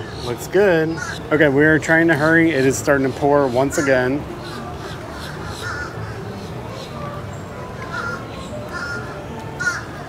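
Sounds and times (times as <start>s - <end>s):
crows cawing: 0.9s - 1.3s, 3.7s - 6.9s, 7.8s - 10.0s.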